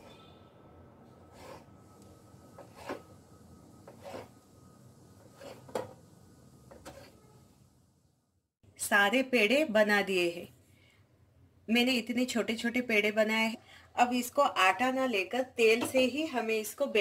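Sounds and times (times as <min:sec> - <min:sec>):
knife cutting dough: 0:03.9 - 0:04.4.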